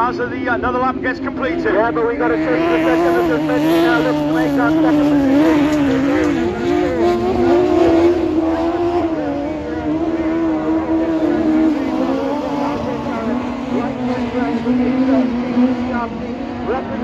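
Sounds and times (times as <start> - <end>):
racing car engines revving: 0.0 - 17.0.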